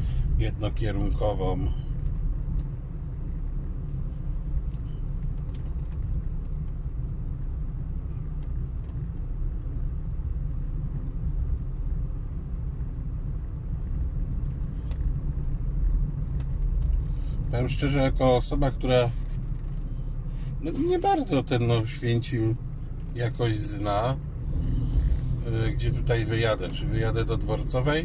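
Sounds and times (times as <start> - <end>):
car engine and tyres rumbling: 0.0 - 28.0.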